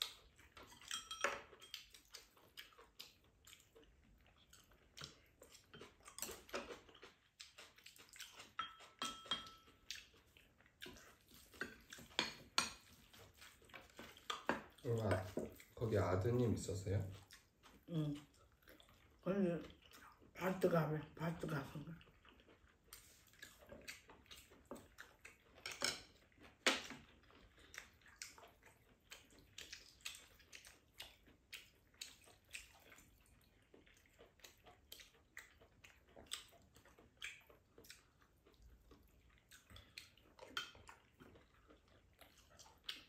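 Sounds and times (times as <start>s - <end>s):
wet chewing and lip smacks: 0.0s - 16.4s, 17.0s - 20.4s, 21.8s - 43.0s
utensils clinking on ceramic bowls: 0.6s - 1.9s, 8.6s - 9.8s, 25.6s - 26.1s.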